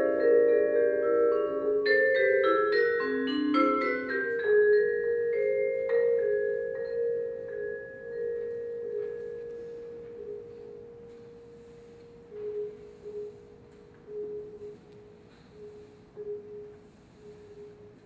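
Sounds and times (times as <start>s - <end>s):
held vibraphone note ringing: 0.0s - 16.6s.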